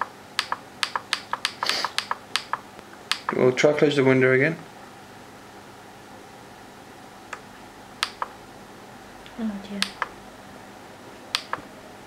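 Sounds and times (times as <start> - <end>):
touchpad buttons clicking: 0.0 - 3.4, 8.0 - 8.4, 9.8 - 10.2, 11.3 - 11.7.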